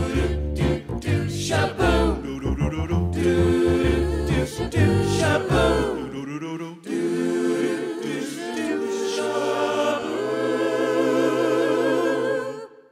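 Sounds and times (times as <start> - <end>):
vocal group singing a cappella: 0.0 - 12.9.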